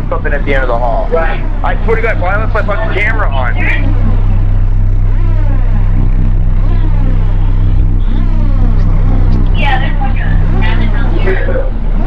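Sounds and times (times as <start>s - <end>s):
loud low hum: 0.0s - 12.0s.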